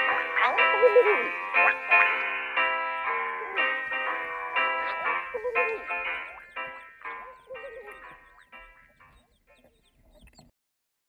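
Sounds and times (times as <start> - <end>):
chicks peeping: 0.0 - 10.5
hen clucking softly: 4.8 - 10.5.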